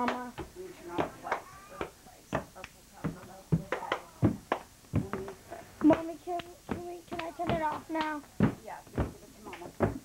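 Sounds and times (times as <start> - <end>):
footsteps: 0.4 - 10.0.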